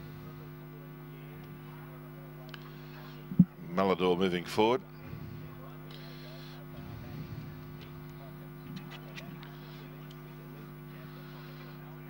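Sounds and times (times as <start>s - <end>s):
low electrical hum: 0.0s - 12.0s
faint background voices: 5.0s - 12.0s.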